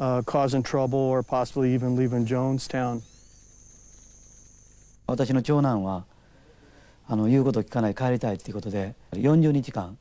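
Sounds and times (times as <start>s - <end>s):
insects trilling: 0.0s - 5.3s.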